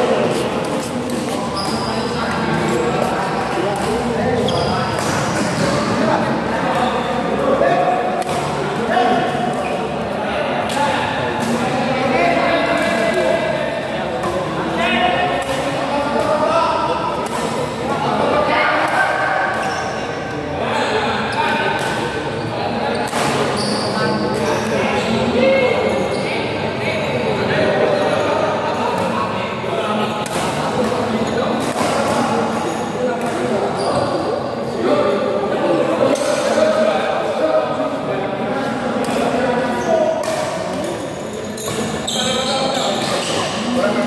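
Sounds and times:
rackets striking shuttlecock: 8.0s - 8.8s, 17.1s - 17.8s, 21.7s - 22.1s.

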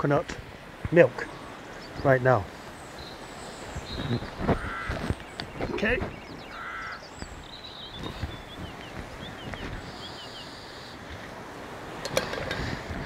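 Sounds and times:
steady low hiss: 0.0s - 13.0s
small bird chirping: 2.8s - 11.0s.

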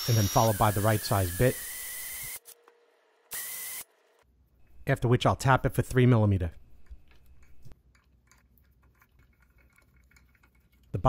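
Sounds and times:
electric drill boring metal: 0.0s - 2.6s, 3.3s - 4.0s.

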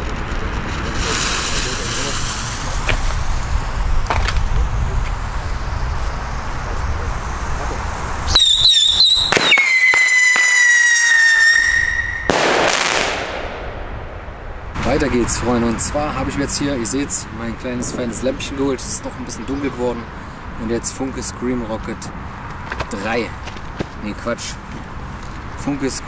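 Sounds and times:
firework rocket whistle: 0.0s - 4.0s, 5.2s - 13.6s
fuse hissing: 0.8s - 9.2s
firework bang: 7.6s - 15.1s.

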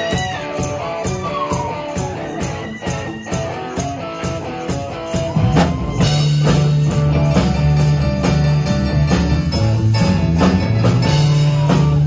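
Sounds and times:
drum kit beat: 0.0s - 12.0s
electric guitar: 0.0s - 12.0s
bass line: 5.0s - 12.0s.

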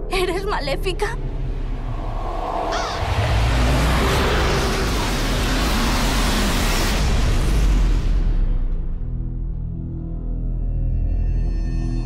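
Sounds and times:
deep rumble: 0.0s - 11.4s
loud rushing noise: 1.3s - 9.0s.

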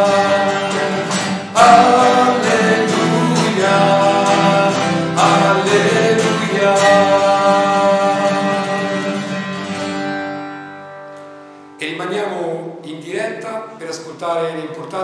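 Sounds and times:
man singing: 0.0s - 9.5s
acoustic guitar strumming: 0.0s - 13.4s.

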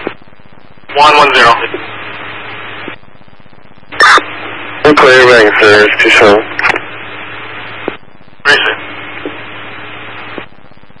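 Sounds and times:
low hum: 0.0s - 11.0s
radio static hiss: 0.0s - 11.0s.

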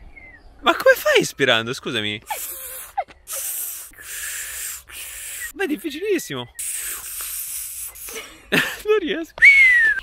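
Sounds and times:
breathy hisses through lips: 2.3s - 5.5s, 6.6s - 8.3s.

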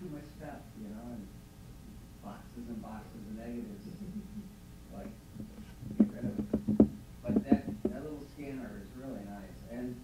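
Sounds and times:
sharp knocks: 5.4s - 8.1s.

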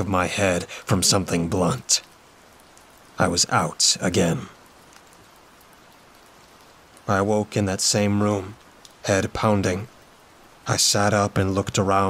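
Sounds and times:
faint steady rain: 0.0s - 12.0s.

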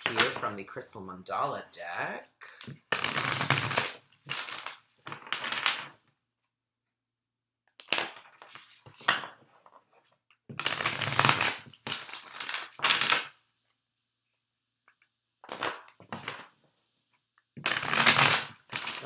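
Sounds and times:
cards being shuffled: 7.8s - 9.8s.

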